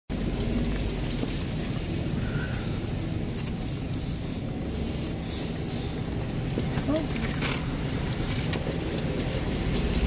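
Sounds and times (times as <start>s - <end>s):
engine and tyres rumbling: 0.1s - 10.0s.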